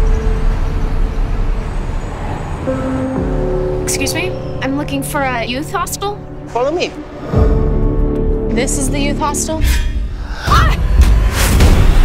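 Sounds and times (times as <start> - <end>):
road traffic rumble: 0.0 - 9.6
low sustained music tone: 0.0 - 10.0.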